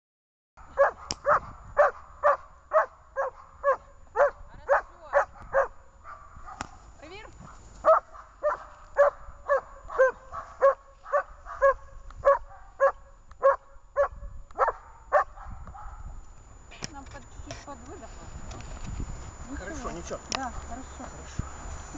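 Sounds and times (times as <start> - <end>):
dog barking: 0.6 - 16.1.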